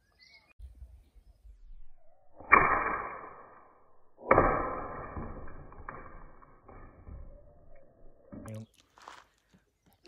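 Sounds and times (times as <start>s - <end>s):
slingshot shot impacts ringing: 2.4s - 6.9s.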